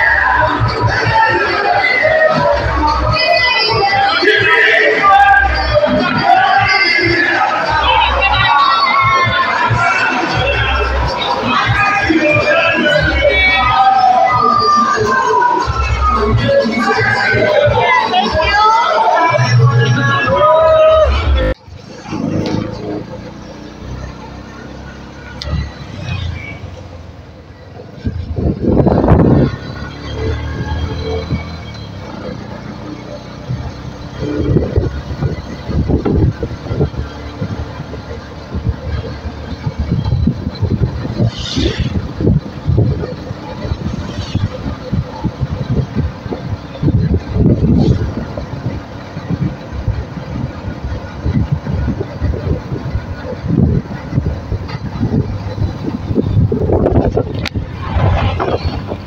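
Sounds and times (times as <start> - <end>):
road rumble: 0.0 - 59.0
vehicle engine running: 0.0 - 59.0
wind buffeting on microphone: 25.4 - 59.0
rushing swell: 54.1 - 59.0.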